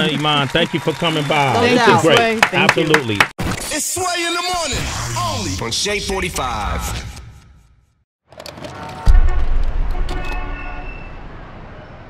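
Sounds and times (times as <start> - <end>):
low traffic rumble: 8.4 - 12.0
car horn toot: 8.7 - 11.2.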